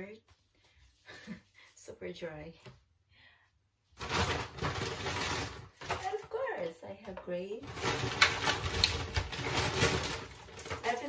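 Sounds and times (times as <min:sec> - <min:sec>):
plastic bag crinkling: 0:04.0 - 0:06.4, 0:07.6 - 0:11.0.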